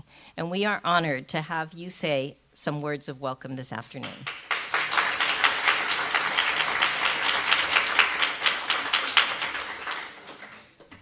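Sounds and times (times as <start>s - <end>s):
audience applauding: 4.2s - 10.8s.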